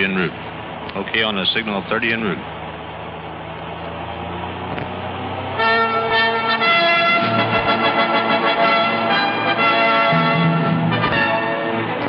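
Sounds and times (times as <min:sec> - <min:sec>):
low vehicle rumble: 0:00.0 - 0:12.0
brass fanfare: 0:05.6 - 0:12.0.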